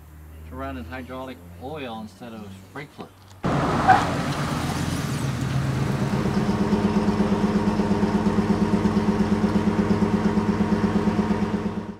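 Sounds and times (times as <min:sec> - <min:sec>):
engine idling: 0:05.1 - 0:11.9.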